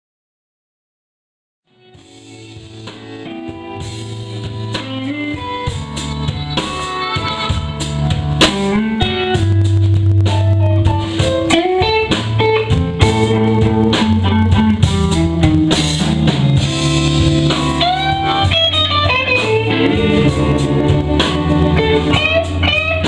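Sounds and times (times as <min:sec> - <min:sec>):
electric guitar lead: 0:01.7 - 0:23.0
bass: 0:01.8 - 0:23.0
drum kit: 0:01.8 - 0:23.0.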